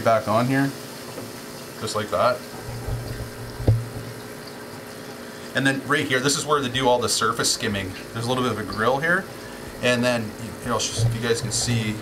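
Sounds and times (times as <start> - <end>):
water rushing and splashing: 2.4 - 4.6, 8.6 - 12.0.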